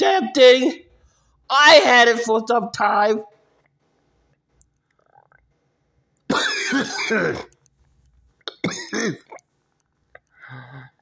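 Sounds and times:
man coughing: 6.3s - 7.5s, 8.5s - 9.4s.

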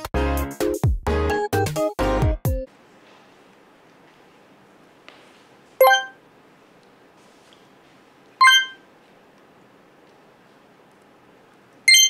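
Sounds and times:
electronic chime ding: 5.8s - 6.2s, 8.4s - 8.8s.

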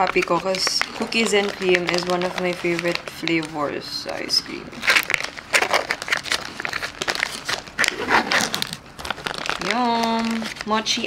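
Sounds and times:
plastic film crinkling: 0.0s - 11.0s.

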